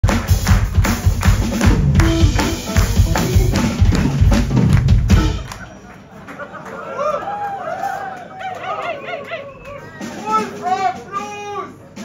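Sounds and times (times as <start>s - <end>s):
audience cheering and whooping: 5.4s - 10.1s.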